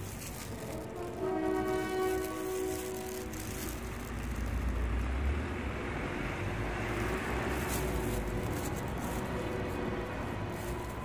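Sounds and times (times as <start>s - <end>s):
passing vehicle rumble: 0.0s - 11.0s.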